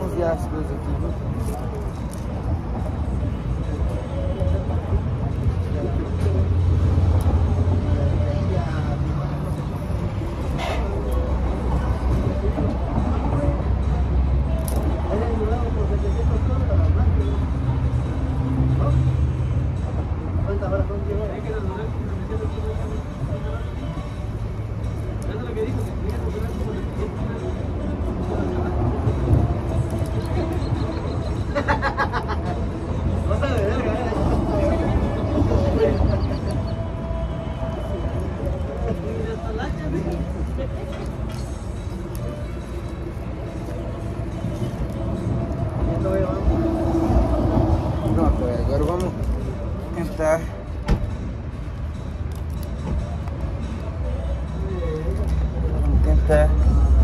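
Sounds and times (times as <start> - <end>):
low traffic rumble: 0.0 - 57.0
music: 1.0 - 57.0.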